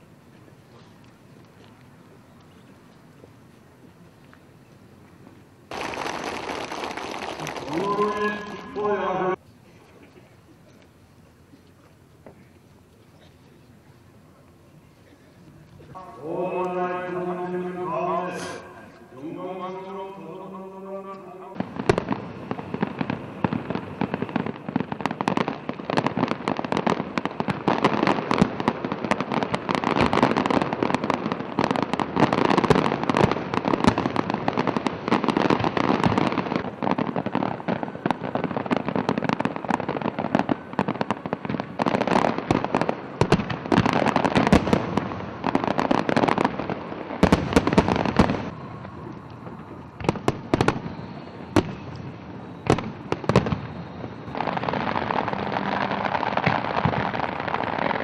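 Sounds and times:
fireworks bangs and crackling: 0.0s - 9.4s, 10.0s - 58.0s.

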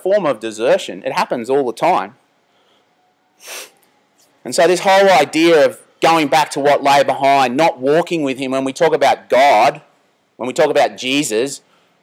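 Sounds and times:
man speaking: 0.0s - 2.2s, 4.4s - 11.6s
breath drawn in through nose: 2.6s - 3.8s.

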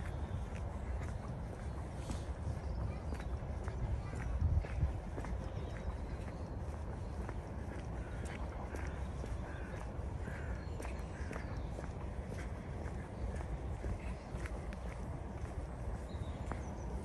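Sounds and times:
footsteps on pavement: 0.0s - 17.0s.

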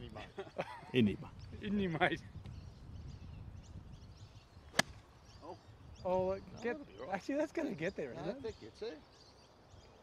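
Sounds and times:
faint outdoor background: 0.0s - 10.0s
golf club striking ball: 4.7s - 5.0s.

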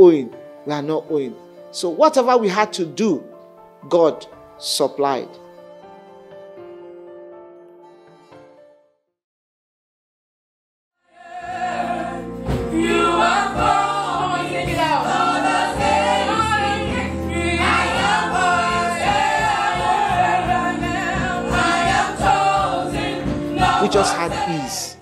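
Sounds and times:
sustained instrumental backing: 11.3s - 25.0s
woman singing gospel: 12.7s - 25.0s.

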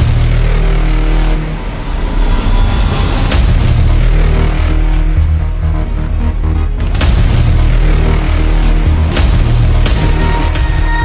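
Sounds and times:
trailer music with heavy bass: 0.0s - 11.0s.

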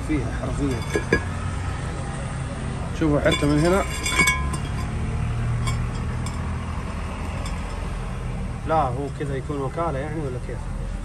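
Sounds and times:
metallic clink with ring: 0.7s - 1.3s, 3.3s - 5.0s, 5.6s - 6.4s, 7.2s - 7.9s.

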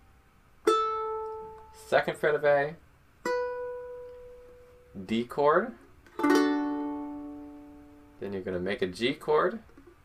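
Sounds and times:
ukulele string plucked: 3.2s - 5.0s, 6.1s - 8.2s.

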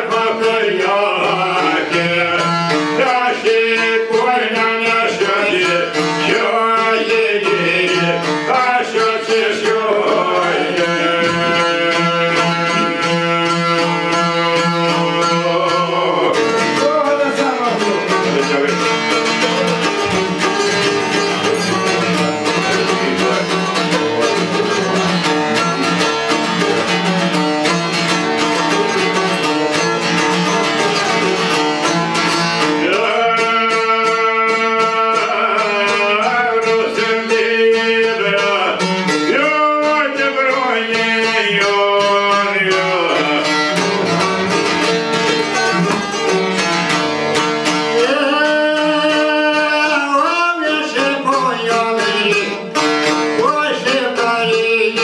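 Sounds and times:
man singing: 0.0s - 28.1s, 31.0s - 44.8s, 47.6s - 55.0s
plucked lutes: 0.0s - 55.0s.

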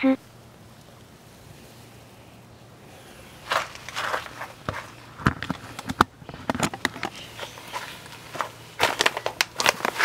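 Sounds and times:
scuffing footsteps: 3.4s - 5.1s.

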